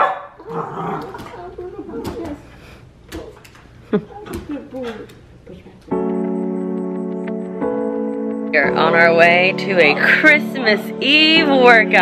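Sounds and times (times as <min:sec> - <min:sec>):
dog barking and whining: 0:00.0 - 0:02.4.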